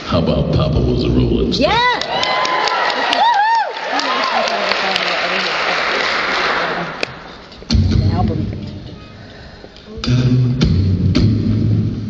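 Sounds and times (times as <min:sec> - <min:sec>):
audience applauding: 0:01.9 - 0:07.4.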